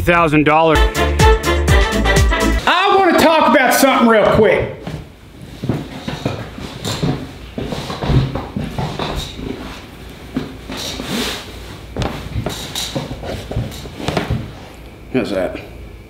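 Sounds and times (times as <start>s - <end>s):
chair creaking: 4.2s - 14.8s
boots thumping on wooden table: 11.9s - 14.5s.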